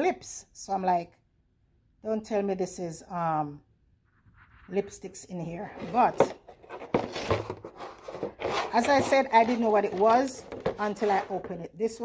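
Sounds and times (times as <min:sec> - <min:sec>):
plastic packaging crinkling: 0:06.7 - 0:11.3.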